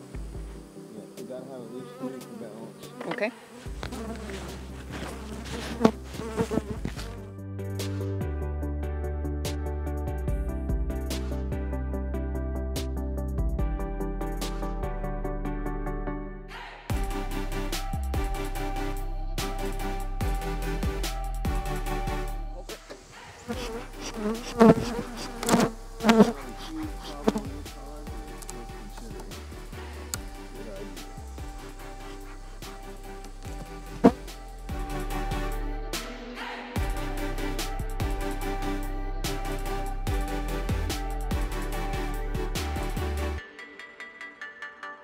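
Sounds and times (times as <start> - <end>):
background music with low tones: 0.0 - 3.0, 3.7 - 45.0
bees buzzing: 0.0 - 7.3, 21.6 - 36.2.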